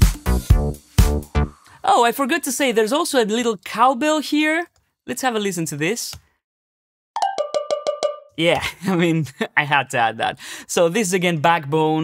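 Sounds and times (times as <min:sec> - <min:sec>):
cowbell hits: 0:07.2 - 0:08.4.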